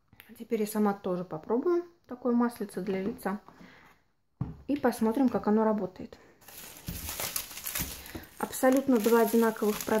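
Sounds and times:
bubble wrap crinkling: 0:06.4 - 0:10.0.

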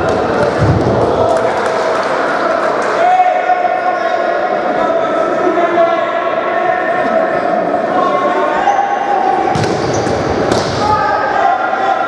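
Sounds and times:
ball bouncing on hall floor: 0:09.5 - 0:10.9.

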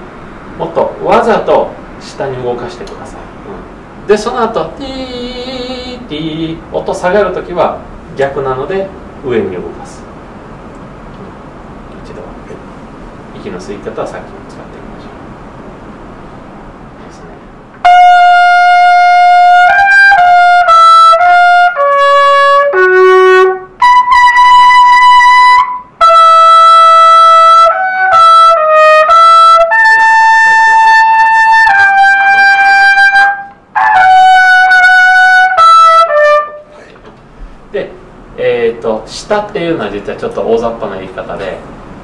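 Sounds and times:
trumpet melody: 0:17.8 - 0:36.8.

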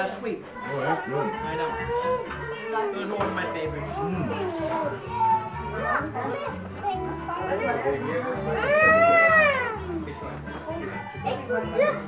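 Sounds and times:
party chatter: 0:00.0 - 0:12.0
young child wailing: 0:08.6 - 0:09.8.

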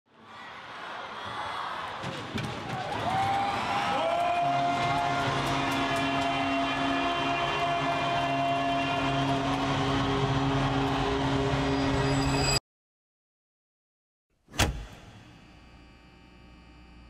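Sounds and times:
low drone tones: 0:05.3 - 0:12.6.

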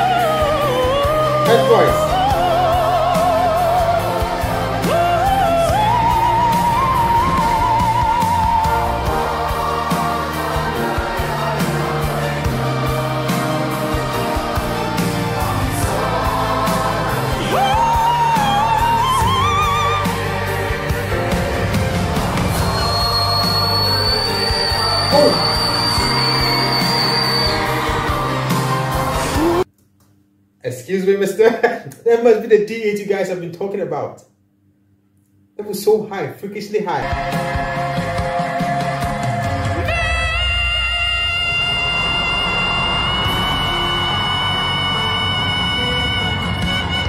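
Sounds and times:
man singing very high note: 0:00.0 - 0:03.3, 0:23.1 - 0:27.4
singer holding high note: 0:00.0 - 0:04.2, 0:22.6 - 0:29.7, 0:39.8 - 0:47.0
backing music: 0:00.0 - 0:29.7, 0:37.0 - 0:47.0
crowd cheering: 0:04.0 - 0:29.7, 0:39.7 - 0:47.0
live band with bass and drums: 0:39.6 - 0:47.0.

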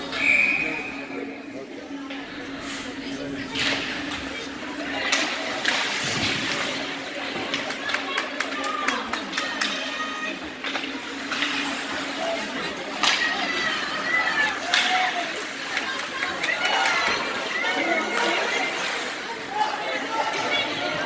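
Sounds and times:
low arena hum: 0:00.0 - 0:21.0
skates scraping ice: 0:02.5 - 0:21.0
sticks and puck clacking: 0:03.5 - 0:12.1, 0:12.8 - 0:18.9.

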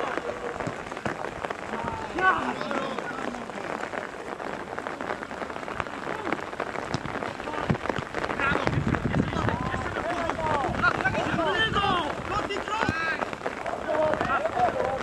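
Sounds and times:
crackling outdoor noise: 0:00.0 - 0:15.0.

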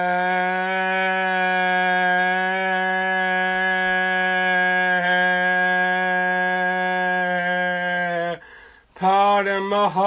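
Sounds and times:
man singing a long note: 0:00.0 - 0:10.0.

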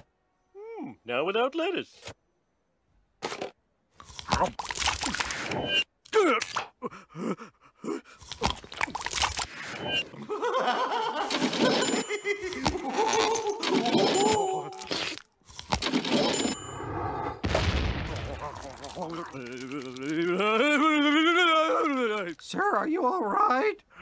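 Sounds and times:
cartoon crunching bites: 0:03.2 - 0:06.7, 0:08.2 - 0:10.1, 0:11.2 - 0:16.6, 0:17.5 - 0:20.9
wavering moan of pleasure: 0:06.8 - 0:08.2, 0:12.5 - 0:15.2, 0:18.3 - 0:22.4.

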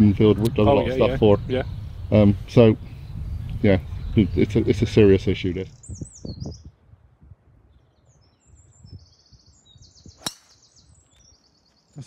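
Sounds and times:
birds singing: 0:00.0 - 0:06.9, 0:07.6 - 0:12.0
golf club striking ball: 0:10.2 - 0:10.7.

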